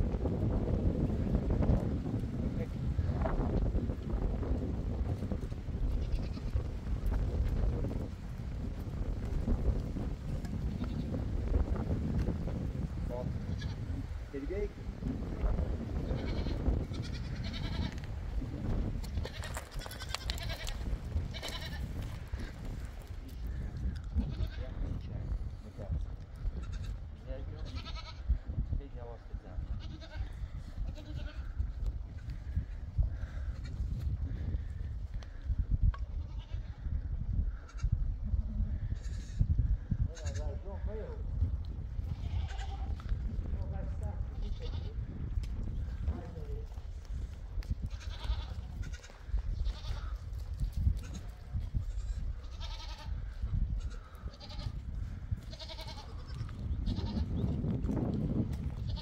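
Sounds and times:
goats bleating: 5.9 - 6.6, 10.7 - 11.1, 13.4 - 14.0, 16.0 - 18.1, 19.1 - 22.5, 24.2 - 25.0, 26.5 - 28.3, 29.7 - 31.6, 36.1 - 36.8, 42.0 - 43.0, 44.3 - 45.0, 47.8 - 50.4, 51.0 - 57.4, 58.8 - 59.0.

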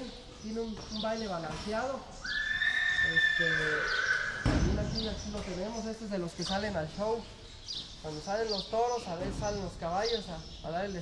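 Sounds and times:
horse whinnying: 2.2 - 4.6.

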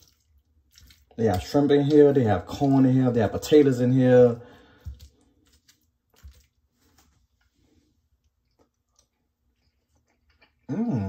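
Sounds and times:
quiet chewing: 0.0 - 2.7, 4.6 - 11.0.

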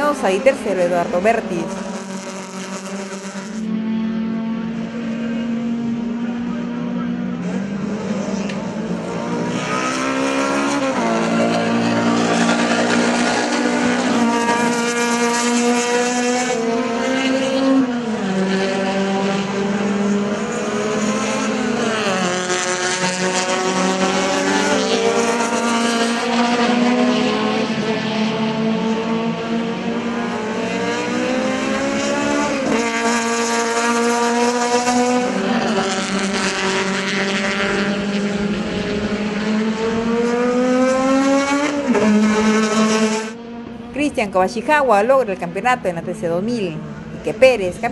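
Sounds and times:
race car engines accelerating: 0.0 - 47.9.

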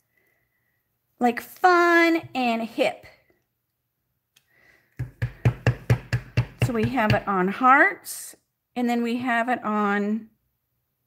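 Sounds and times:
stamp tapping on ink pad: 5.0 - 7.3.

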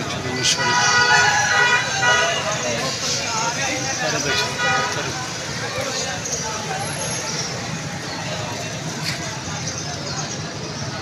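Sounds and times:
people talking: 0.0 - 11.0
traffic drone: 0.0 - 11.0.

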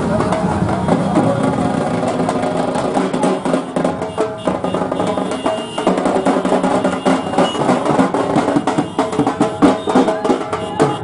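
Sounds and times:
many voices: 0.0 - 3.8, 9.2 - 11.0
drums: 0.0 - 11.0
music: 0.0 - 11.0.

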